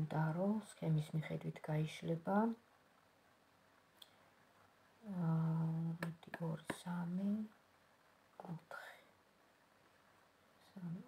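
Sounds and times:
woman speaking softly: 0:00.0 - 0:02.7, 0:05.0 - 0:07.6, 0:08.4 - 0:09.2, 0:10.6 - 0:11.0.

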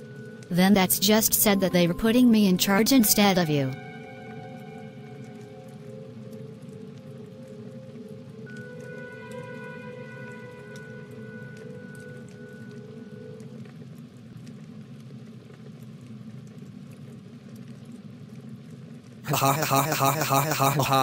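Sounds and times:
music of long held notes: 0:00.0 - 0:14.5
fire crackling: 0:03.8 - 0:20.8.

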